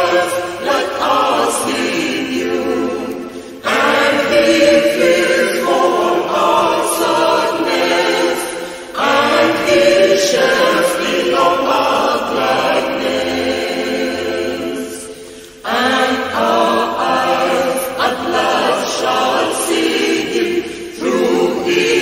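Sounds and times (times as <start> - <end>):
choir singing a hymn: 0.0 - 22.0.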